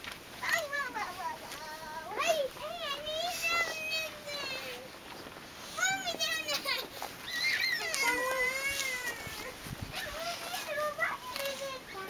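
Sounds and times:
small child whining: 7.2s - 10.7s.

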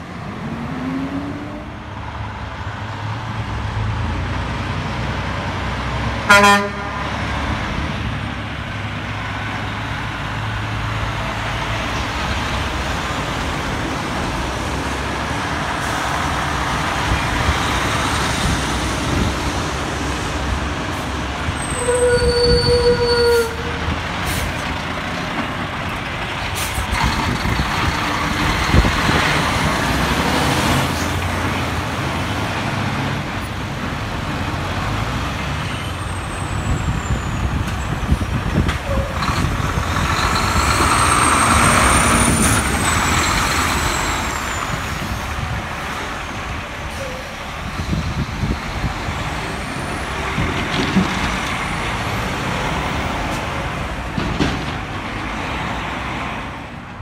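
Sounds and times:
diesel truck engines: 0.0s - 57.0s
truck horn toot: 6.3s - 7.1s, 21.6s - 23.8s.

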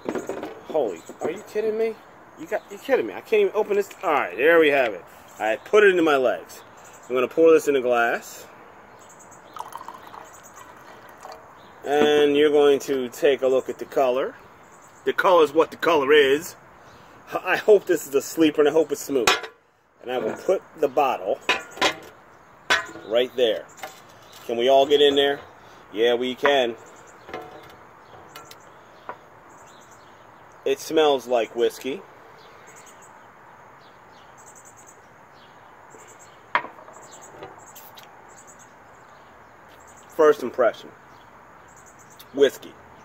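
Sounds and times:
birds chirping: 0.0s - 43.0s
man talking: 0.7s - 8.5s, 11.8s - 14.4s, 15.1s - 16.6s, 17.3s - 19.4s, 20.0s - 21.4s, 23.0s - 23.7s, 24.4s - 26.8s, 30.6s - 32.0s, 40.2s - 40.9s, 42.2s - 42.8s
faint bird chirps: 8.9s - 12.4s, 32.3s - 40.2s
insects chirping: 9.0s - 11.9s.

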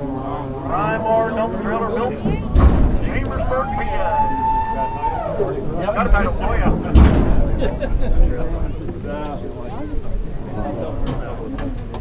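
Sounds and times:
crowd talking: 0.0s - 12.0s
heavy thumps: 1.3s - 10.1s.

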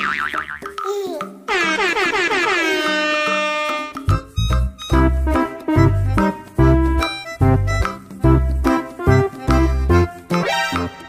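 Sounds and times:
cartoon horn tone dropping in pitch: 1.5s - 4.1s.

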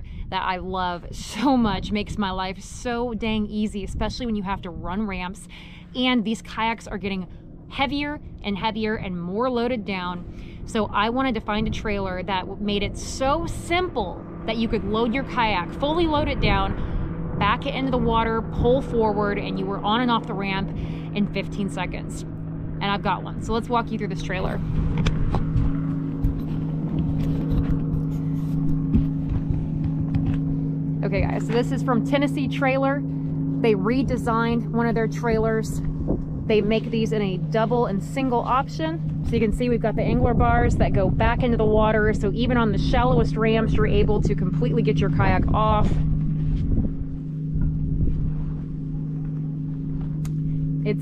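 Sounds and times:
engine idling: 0.0s - 51.0s
wind rumbling on microphone: 0.0s - 51.0s.

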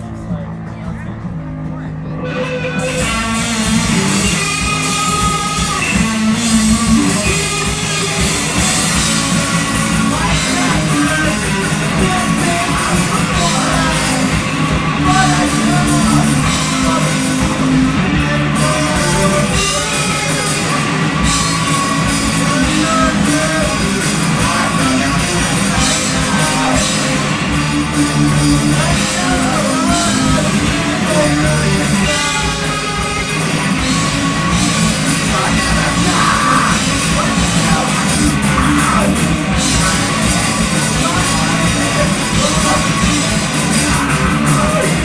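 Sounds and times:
drum kit with cymbals: 0.0s - 45.0s
electric guitar: 0.0s - 45.0s
live punk rock band: 0.0s - 45.0s.

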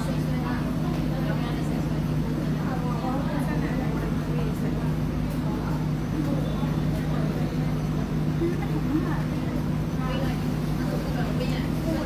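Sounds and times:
faint voices talking: 0.0s - 12.0s
low hum of indoor hall: 0.0s - 12.0s.

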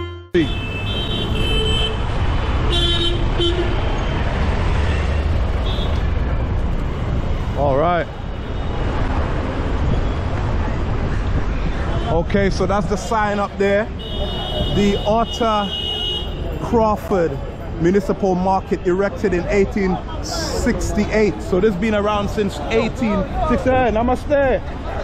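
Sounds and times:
scooters and cars passing: 0.0s - 25.0s.

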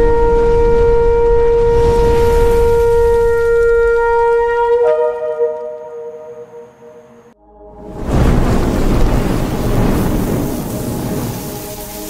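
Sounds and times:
shofar blast: 0.0s - 12.0s
low rumble: 7.2s - 12.0s.

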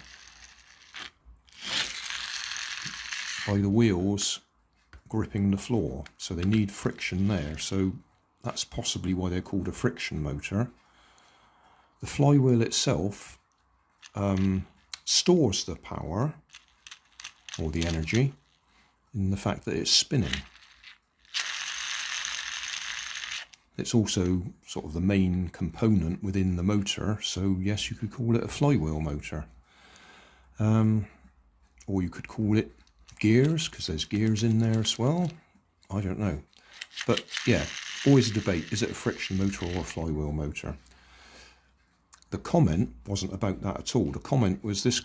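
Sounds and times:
toy car flywheel whirring: 0.0s - 3.7s, 16.5s - 18.6s, 20.2s - 23.6s, 33.0s - 35.3s, 36.6s - 40.0s.

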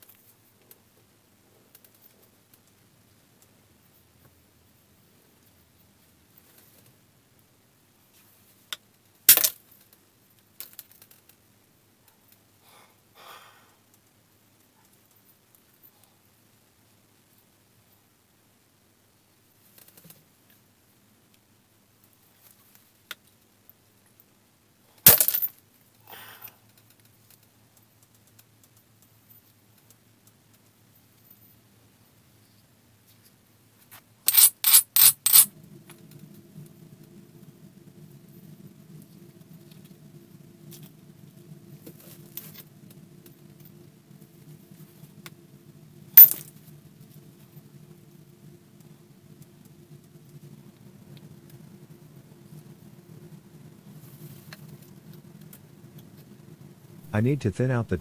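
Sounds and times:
faint low hum: 11.1s - 58.0s.

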